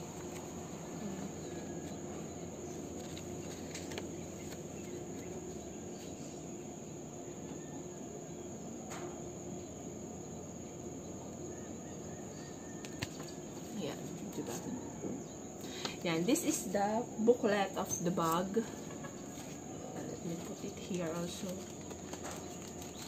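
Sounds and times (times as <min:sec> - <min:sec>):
paper handling click: 0:02.9 - 0:05.3.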